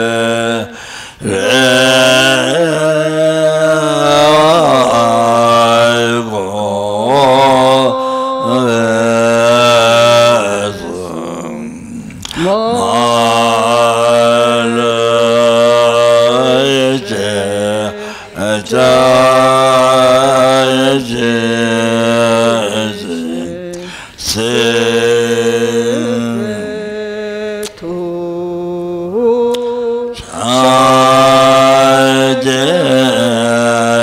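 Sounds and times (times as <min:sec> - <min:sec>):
man chanting in deep voice: 0:00.0 - 0:34.0.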